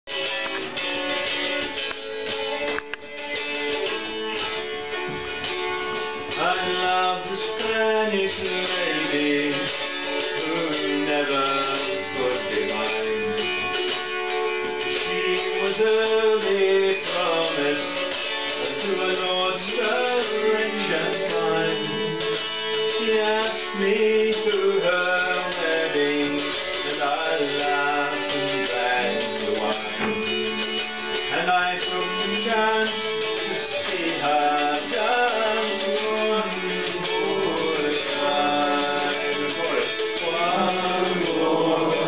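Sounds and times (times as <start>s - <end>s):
acoustic guitar folk song: 0.0s - 42.0s.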